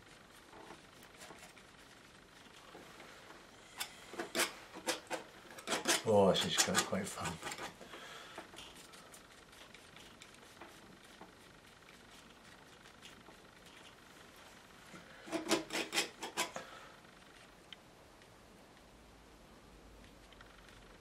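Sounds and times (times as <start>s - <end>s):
palette knife scraping paint: 0.0s - 14.4s, 15.1s - 17.5s.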